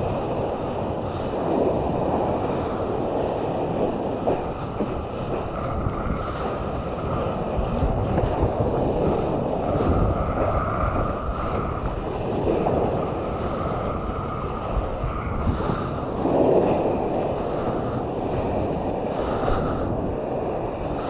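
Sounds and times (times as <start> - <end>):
rushing water and spray: 0.0 - 21.0
wind buffeting microphone: 0.0 - 21.0.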